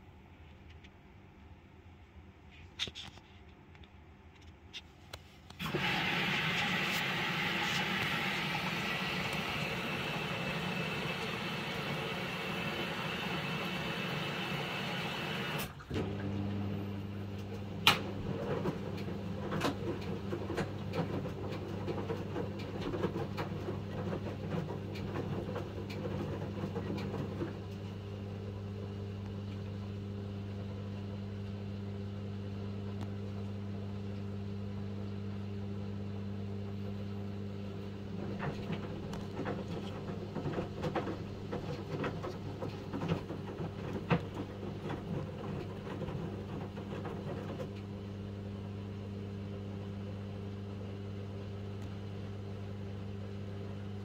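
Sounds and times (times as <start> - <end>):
washing machine drawing water: 5.6 - 31.2, 36.8 - 54.0
washing machine motor hum: 5.6 - 54.0
wet laundry sloshing and knocking: 17.6 - 28.0, 38.1 - 48.0.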